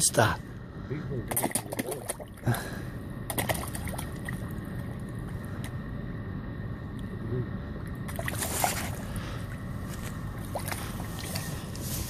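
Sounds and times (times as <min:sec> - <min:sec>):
steady low rumble: 0:00.0 - 0:12.0
fish splashing at water surface: 0:01.3 - 0:02.5, 0:03.3 - 0:04.9, 0:08.0 - 0:09.1, 0:10.4 - 0:11.8.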